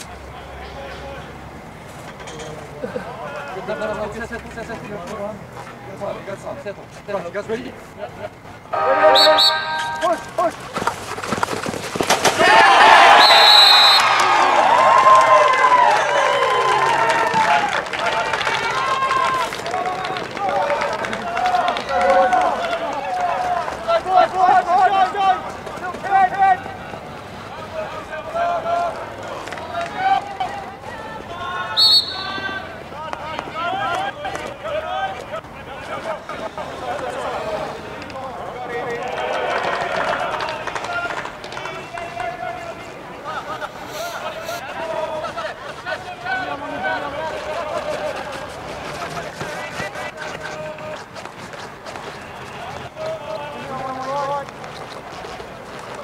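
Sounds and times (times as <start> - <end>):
high umpire's whistle: 8.7 - 10.3, 13.1 - 14.1, 31.8 - 32.6
crowd shouting and cheering: 8.7 - 10.6, 12.2 - 51.0.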